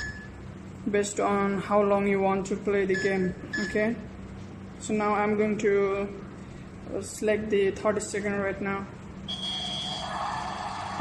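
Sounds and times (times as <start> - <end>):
high electronic beep: 9.3 - 10.1.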